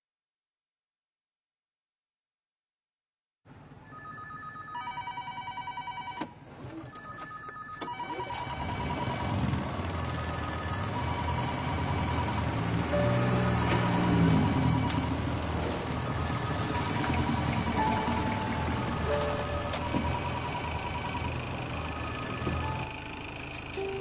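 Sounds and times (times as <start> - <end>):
electronic ringing tones: 3.9 - 6.3, 6.9 - 24.0.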